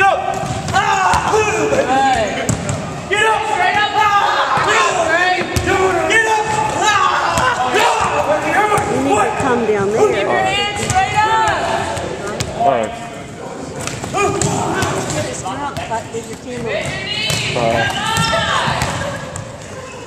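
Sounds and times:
students talking and calling out: 0.8 - 20.0.

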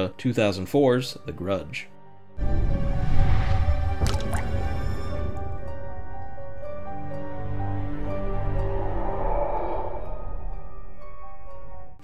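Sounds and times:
eerie horror music: 0.0 - 12.0
low rumble: 2.4 - 6.3, 7.2 - 12.0.

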